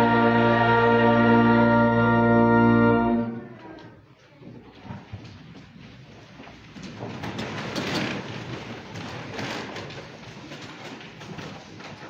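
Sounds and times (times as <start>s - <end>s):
rustling clothes and shuffling: 3.6s - 12.0s.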